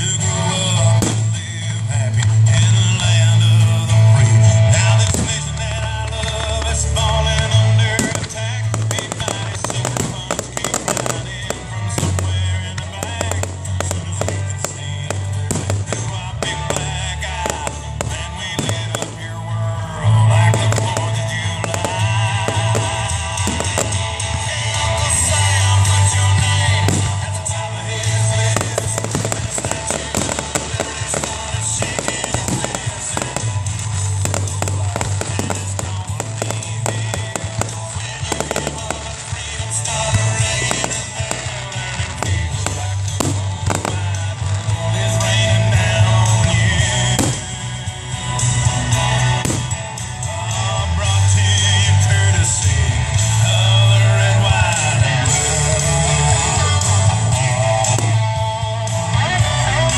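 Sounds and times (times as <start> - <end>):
fireworks bangs and crackles: 0.0 - 59.9
song with heavy bass: 0.0 - 59.9.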